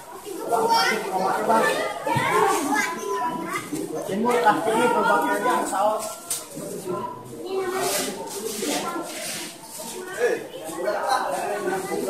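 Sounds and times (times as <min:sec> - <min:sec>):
chatter of children and adults: 0:00.0 - 0:12.0.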